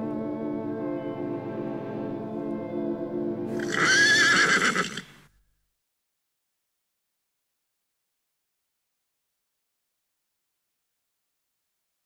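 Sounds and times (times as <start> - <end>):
background music: 0.0 - 5.1
horse whinnying: 3.5 - 5.2.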